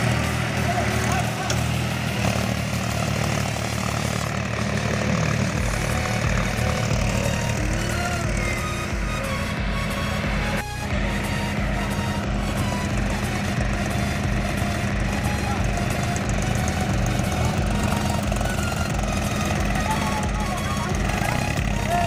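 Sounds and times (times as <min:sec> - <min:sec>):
music: 0:00.0 - 0:03.1, 0:04.9 - 0:22.0
tractor diesel engine straining: 0:00.0 - 0:22.0
men shouting: 0:00.1 - 0:22.0.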